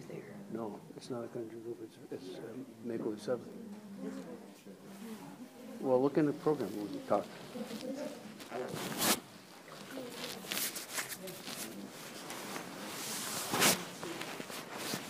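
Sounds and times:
murmur of quiet conversation: 0.0 - 15.0
brief rustling: 6.4 - 15.0.

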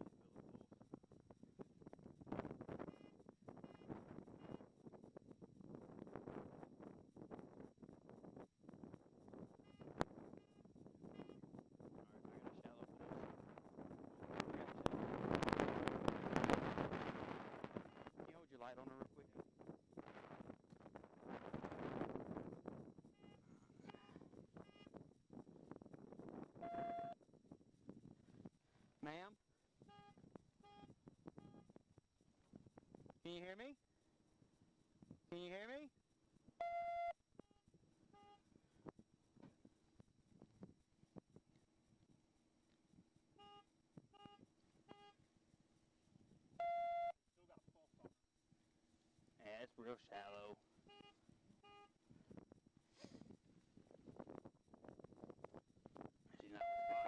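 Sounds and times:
police radio traffic: 26.6 - 27.2, 56.4 - 57.0
short electronic beeps: 26.6 - 27.2, 29.9 - 31.7, 36.6 - 37.2, 43.4 - 43.6, 46.6 - 47.2, 50.9 - 51.9, 56.5 - 57.0.

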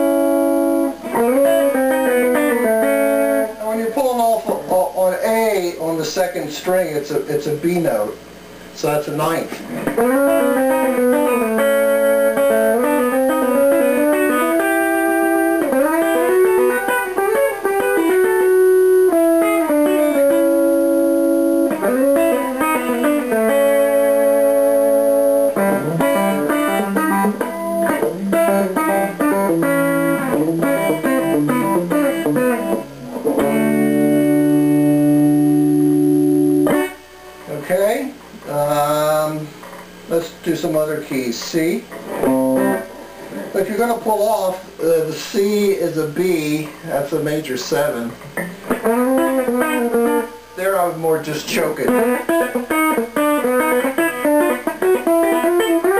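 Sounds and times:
clean electric guitar licks: 41.9 - 43.6, 48.1 - 50.2.

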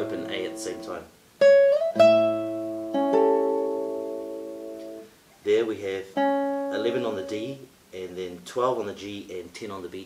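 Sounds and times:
classical guitar notes ringing: 0.0 - 5.1, 6.0 - 7.6
guitar chord plucked: 0.0 - 5.1, 6.1 - 7.6.

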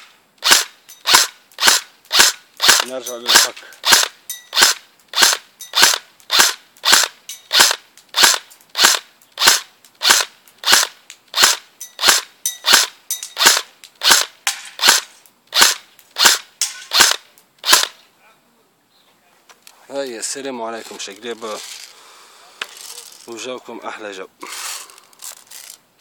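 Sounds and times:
rifle firing single shots: 0.0 - 18.0.

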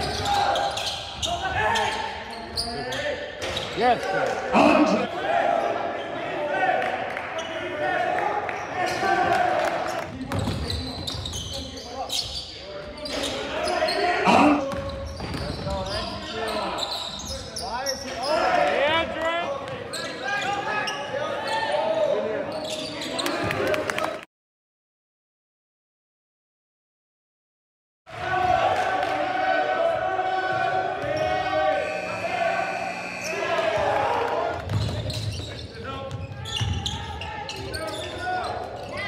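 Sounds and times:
sneakers squeaking: 0.0 - 3.8, 10.2 - 18.5, 19.8 - 23.5, 30.5 - 39.0.

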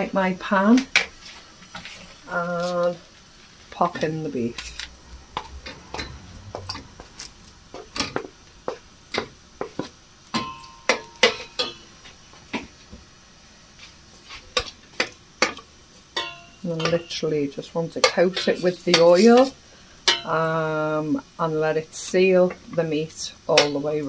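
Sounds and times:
wooden spoon scraping metal pot: 3.7 - 10.0.

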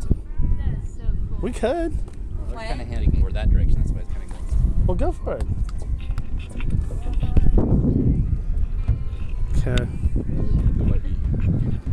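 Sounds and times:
wind buffeting microphone: 0.0 - 11.9
faint voices: 5.2 - 11.9.

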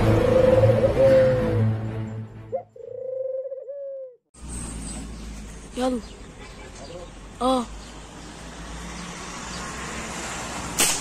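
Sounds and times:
outdoor background noise: 0.0 - 11.0
wavering pitched call: 2.6 - 4.2.

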